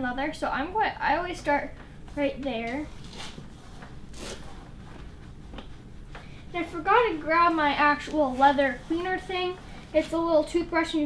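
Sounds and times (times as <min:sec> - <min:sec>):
cloth rubbing on leather: 0:02.9 - 0:06.0, 0:07.3 - 0:10.2.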